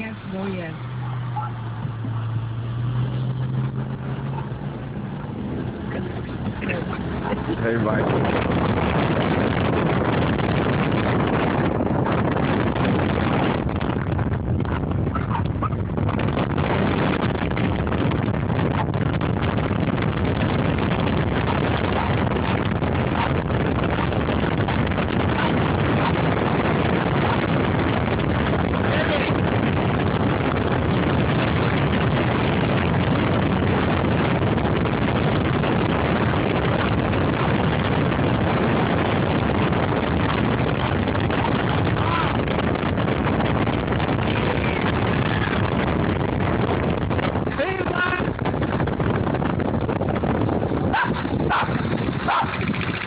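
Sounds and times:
wind and road noise: 0.0s - 53.0s.

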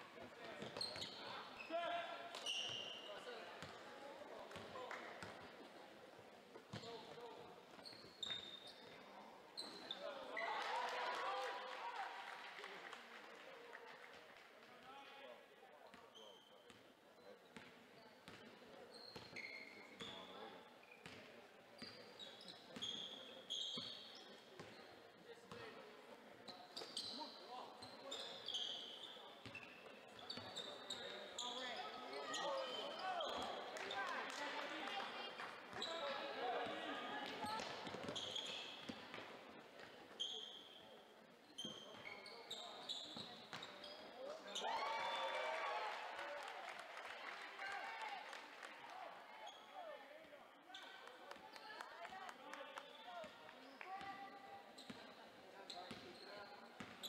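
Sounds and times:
sneakers squeaking: 0.2s - 3.8s, 6.6s - 10.5s, 15.9s - 25.7s, 26.4s - 34.1s, 35.7s - 44.7s, 49.4s - 49.9s, 50.6s - 51.6s, 52.9s - 57.0s.

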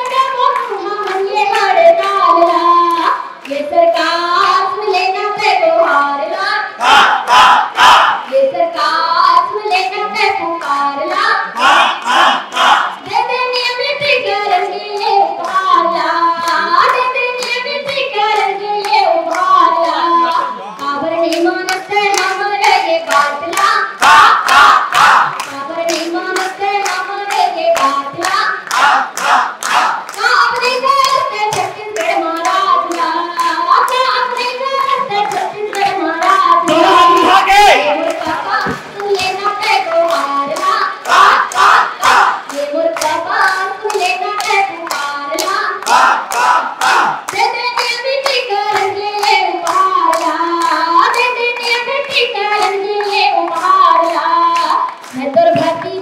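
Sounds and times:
crowd clapping in time: 0.0s - 56.0s
woman singing through loudspeaker: 0.0s - 56.0s.

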